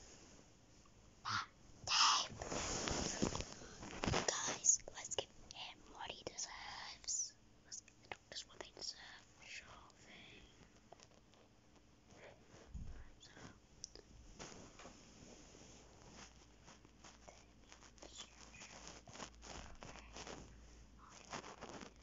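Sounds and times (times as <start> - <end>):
person whispering: 1.3 - 3.4, 4.2 - 10.6, 12.9 - 14.1, 17.2 - 20.3.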